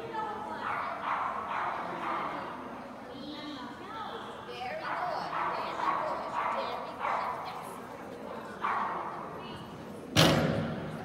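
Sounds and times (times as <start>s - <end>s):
dog barking: 0.6s - 2.4s, 4.8s - 7.5s, 8.6s - 9.1s.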